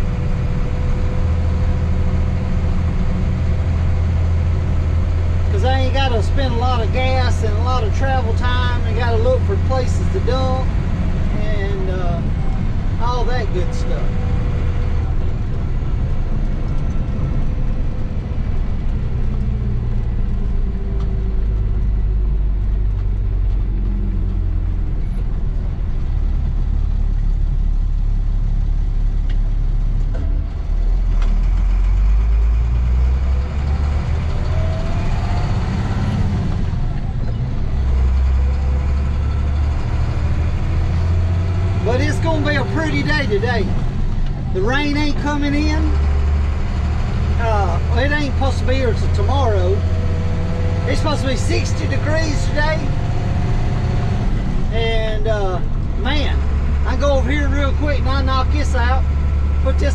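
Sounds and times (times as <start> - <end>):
truck engine drone: 0.0 - 59.9.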